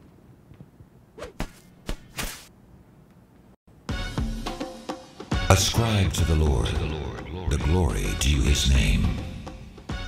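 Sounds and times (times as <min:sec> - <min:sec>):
whip-like swishes: 0:01.2 - 0:02.5.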